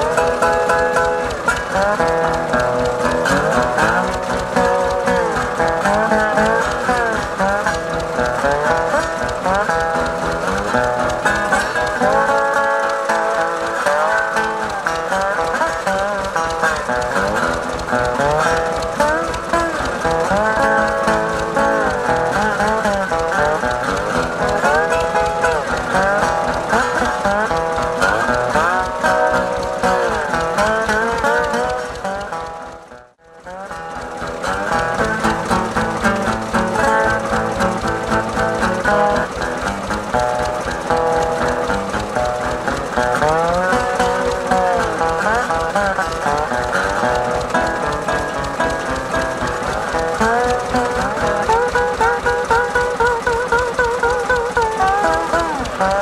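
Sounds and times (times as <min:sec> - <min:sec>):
slide blues guitar: 0:00.0 - 0:56.0
tractor engine running: 0:00.0 - 0:56.0.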